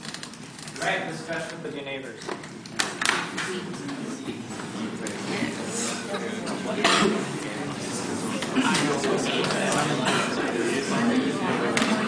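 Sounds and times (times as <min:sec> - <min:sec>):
students chattering: 0:03.1 - 0:12.0.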